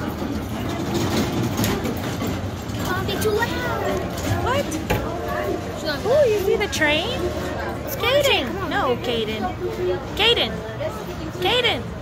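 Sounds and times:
faint voices: 0:00.0 - 0:12.0
kiddie ride train running: 0:00.0 - 0:12.0.

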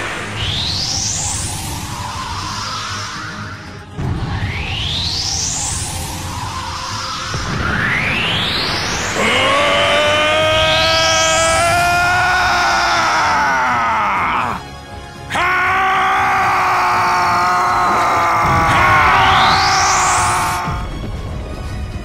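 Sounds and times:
rising whoosh effects: 0:00.0 - 0:11.9
music soundtrack: 0:00.0 - 0:22.0
long battle screams: 0:09.2 - 0:14.7, 0:15.3 - 0:20.9.

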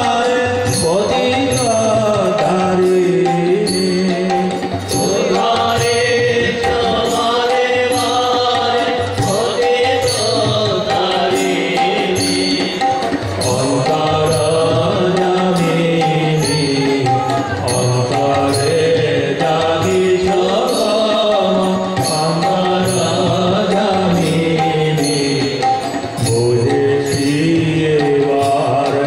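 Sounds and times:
devotional singing: 0:00.0 - 0:29.0
steady percussion beat: 0:00.0 - 0:29.0.

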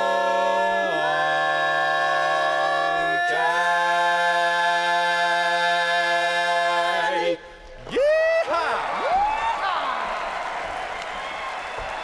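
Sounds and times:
rising whoops: 0:07.9 - 0:10.3
audience applauding and cheering: 0:07.9 - 0:12.0.

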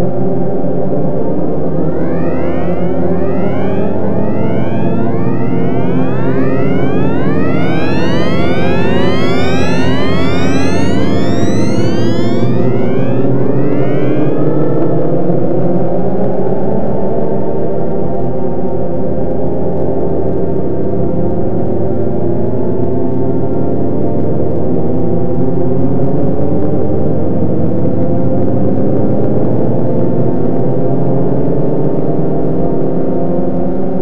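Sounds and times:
electronic drone music: 0:01.5 - 0:15.1
tones gliding upward in pitch: 0:01.5 - 0:15.3.

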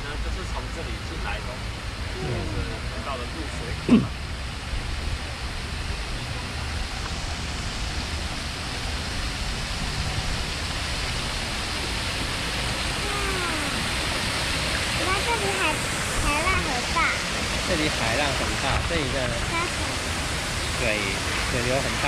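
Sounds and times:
water rushing into canal: 0:00.0 - 0:22.0.

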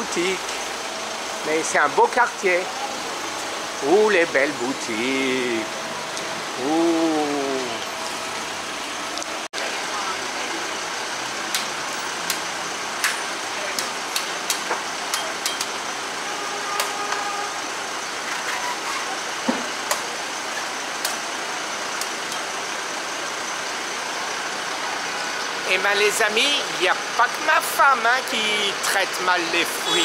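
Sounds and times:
street traffic noise: 0:00.0 - 0:30.0.

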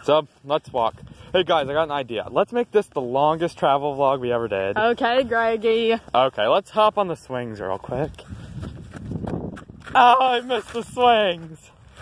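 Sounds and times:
footsteps on grass and gravel: 0:07.7 - 0:12.0.

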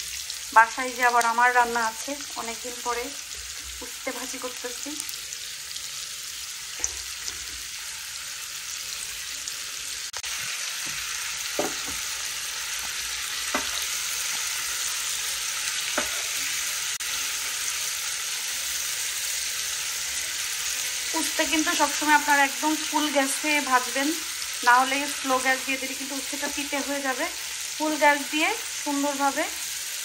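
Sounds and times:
vegetables sizzling in oil: 0:00.0 - 0:30.0.

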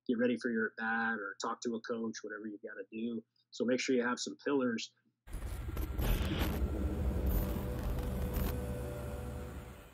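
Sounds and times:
deep bass rumble: 0:05.3 - 0:09.8.

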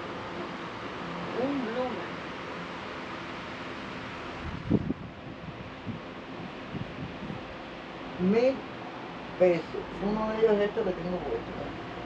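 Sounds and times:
steady rushing noise: 0:00.0 - 0:10.8.

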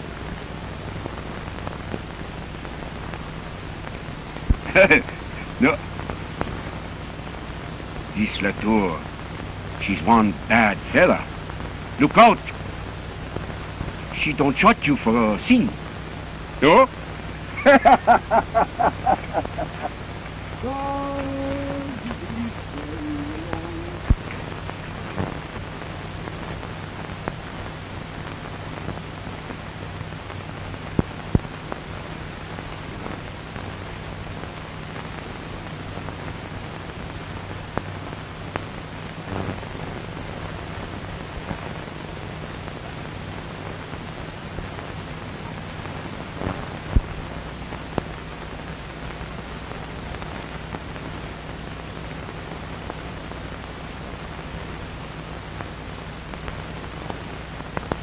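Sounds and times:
faint high whine: 0:00.0 - 0:58.0
film soundtrack hiss and hum: 0:00.0 - 0:58.0.

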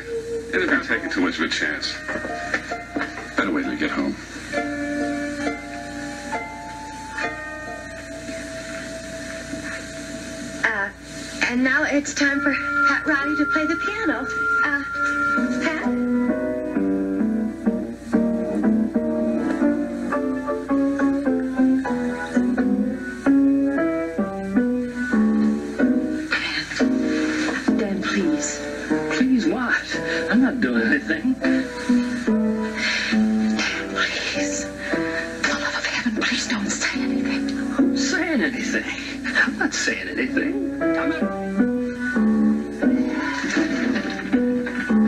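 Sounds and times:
slow piano tune from television: 0:00.0 - 0:45.0.

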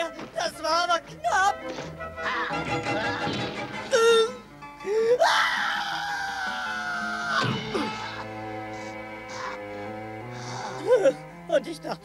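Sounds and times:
background music: 0:00.0 - 0:12.0
cartoon character screaming: 0:05.2 - 0:08.2.

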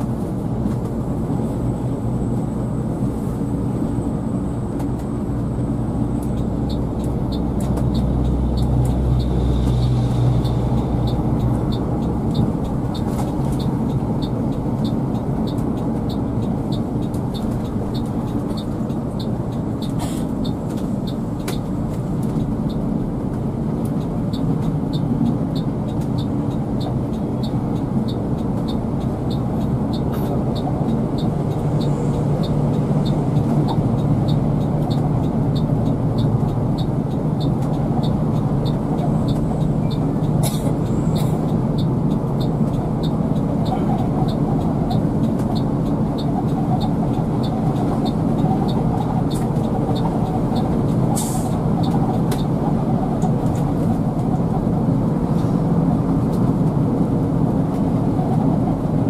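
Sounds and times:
coach engine and road noise: 0:00.0 - 0:59.0.

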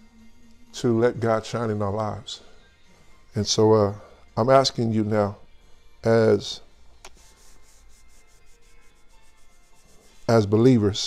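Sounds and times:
hands rubbing together: 0:07.0 - 0:10.6.

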